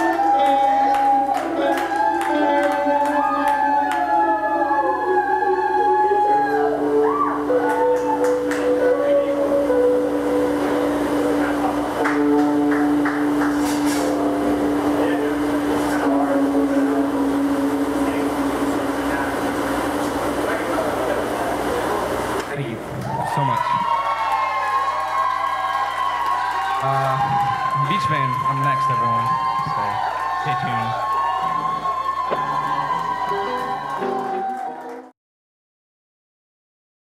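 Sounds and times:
live rock band with electric guitars: 0:07.4 - 0:18.9.

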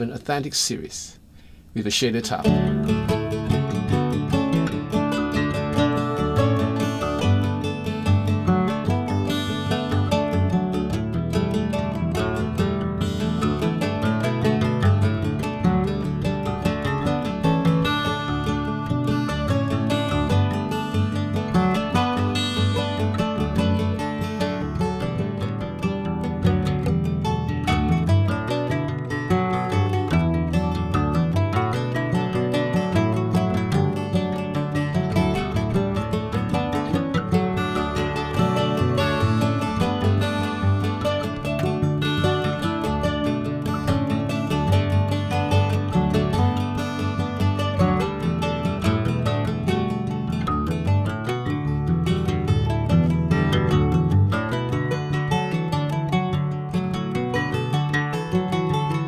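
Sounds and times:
acoustic guitar picking melody: 0:01.2 - 0:59.0.

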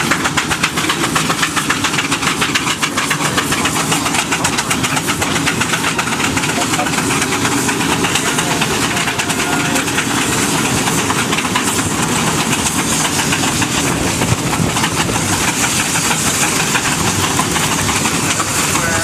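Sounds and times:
steam hissing: 0:00.0 - 0:19.0
steam locomotives chuffing: 0:00.0 - 0:19.0.

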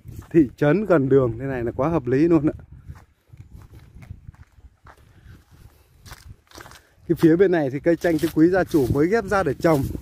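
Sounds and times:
soft footsteps on dirt path: 0:00.0 - 0:10.0.

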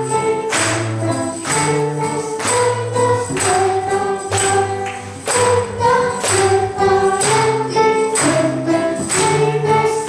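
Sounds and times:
acoustic guitar: 0:00.0 - 0:10.0
children and woman singing: 0:00.0 - 0:10.0
tambourine hits: 0:00.0 - 0:10.0.

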